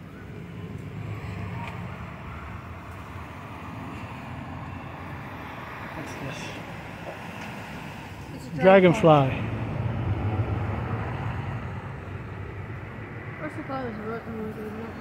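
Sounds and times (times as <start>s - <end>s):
cars driving rumble: 0.0s - 15.0s.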